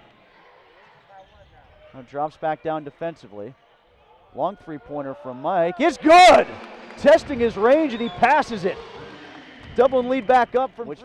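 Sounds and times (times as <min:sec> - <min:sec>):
low crowd murmur: 0:00.0 - 0:11.0.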